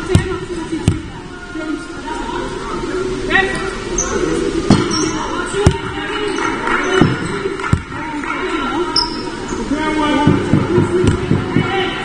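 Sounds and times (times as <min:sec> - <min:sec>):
indistinct voices: 0:00.0 - 0:12.0
basketball bouncing on floor: 0:07.0 - 0:08.0, 0:10.2 - 0:11.8.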